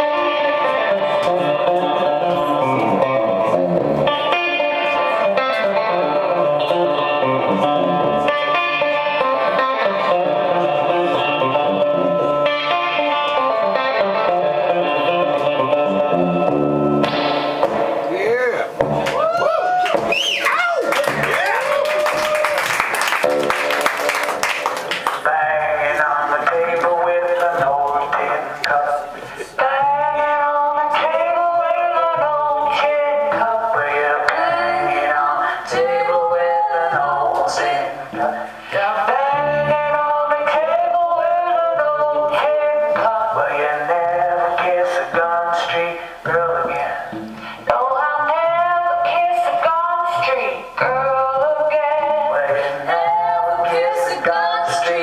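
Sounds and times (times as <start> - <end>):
live band with electric guitar: 0.0 - 55.0.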